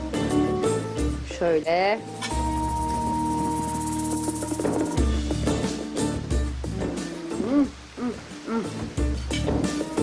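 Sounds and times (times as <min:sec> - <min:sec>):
sustained held notes: 0:02.0 - 0:05.0
light quick percussion: 0:02.1 - 0:06.5.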